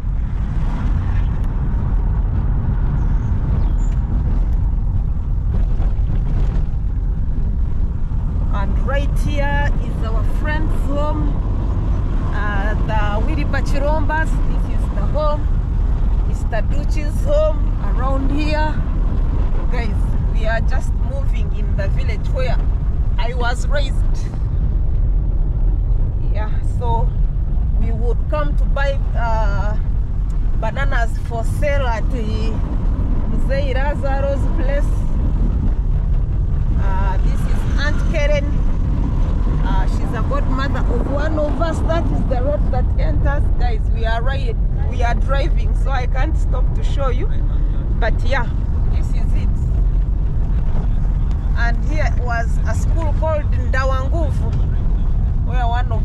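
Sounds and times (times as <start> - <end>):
car engine and tyres rumbling: 0.0 - 56.0
people talking: 8.6 - 11.4, 12.3 - 15.5, 16.3 - 18.8, 19.7 - 22.6, 23.2 - 24.3, 26.2 - 27.1, 27.8 - 29.8, 30.6 - 32.6, 33.3 - 35.1, 36.8 - 38.6, 39.6 - 49.6, 51.6 - 54.8, 55.4 - 56.0.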